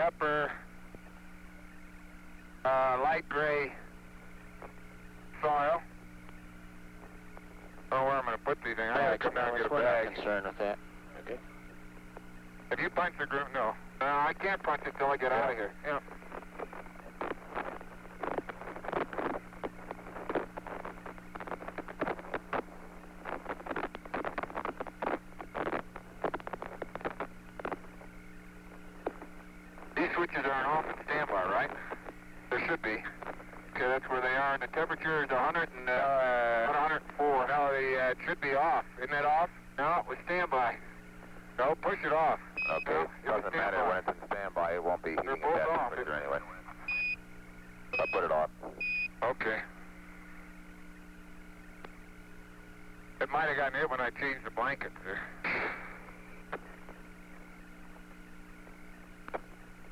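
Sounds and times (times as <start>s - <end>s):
crackling radio transmission noise: 0.0s - 59.9s
steady low hum: 0.0s - 59.9s
garbled radio voice: 7.9s - 11.4s, 12.7s - 19.4s, 29.9s - 40.8s, 41.6s - 46.9s, 48.0s - 49.8s, 53.2s - 55.6s.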